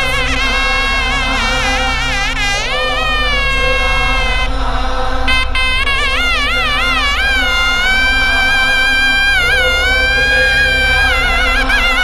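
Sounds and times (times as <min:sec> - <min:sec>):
double-reed horn melody: 0:00.0 - 0:12.0
steady low backing drone: 0:00.0 - 0:12.0.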